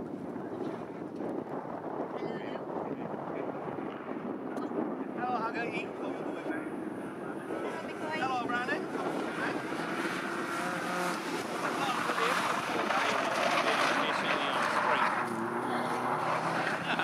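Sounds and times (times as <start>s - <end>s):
race car engines revving: 5.9s - 17.0s.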